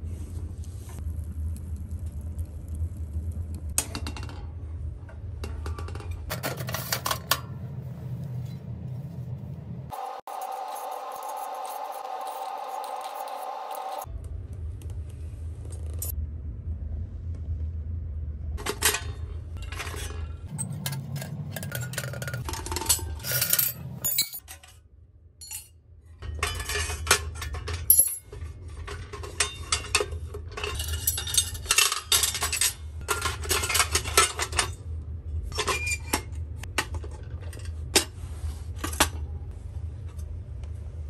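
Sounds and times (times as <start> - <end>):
steady low hum: 0.0 - 24.4
sheet steel parts clinking and scraping: 5.4 - 7.8, 18.6 - 24.8, 25.4 - 34.8.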